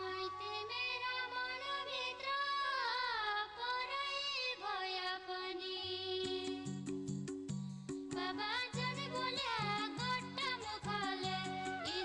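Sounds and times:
woman singing folk song: 0.0s - 6.8s, 8.1s - 12.0s.

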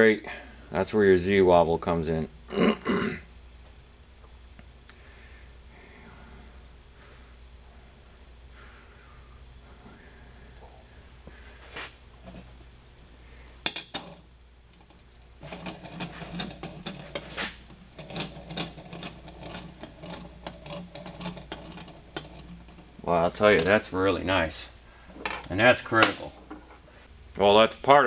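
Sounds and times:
metal screw rolling on glass: 13.7s - 23.7s.

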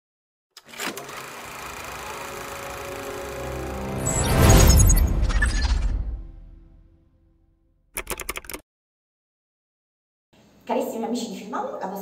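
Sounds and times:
film projector whirring: 0.6s - 4.0s.

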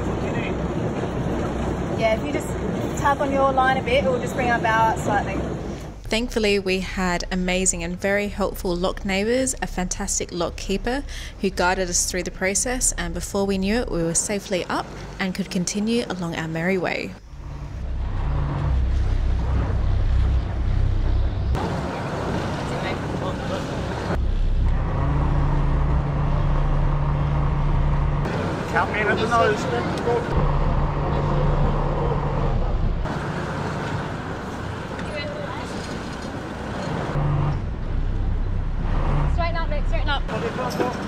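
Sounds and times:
boat engine idling: 17.2s - 38.8s.

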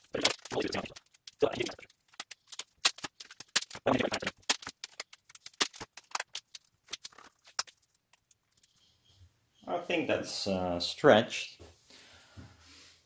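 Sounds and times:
sharp crackles and clicks: 0.0s - 8.8s
tape being ripped off: 0.2s - 7.8s.

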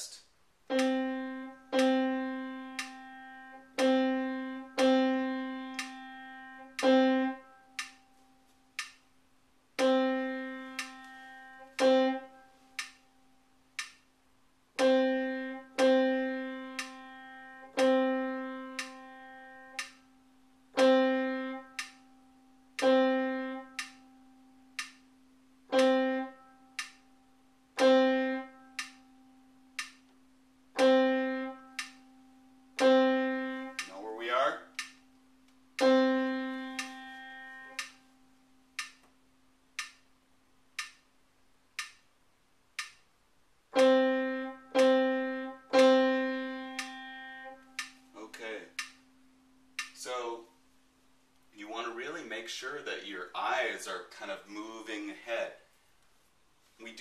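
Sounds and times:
faint metronome click: 0.7s - 9.1s, 9.8s - 52.2s.

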